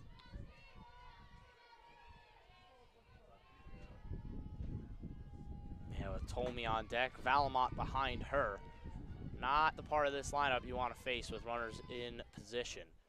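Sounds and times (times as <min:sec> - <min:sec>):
faint voices talking and calling: 0:00.0 - 0:13.0.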